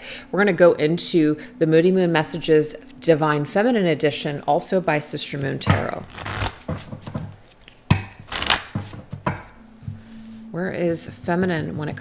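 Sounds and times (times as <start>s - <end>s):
cards being shuffled: 5.4s - 9.6s.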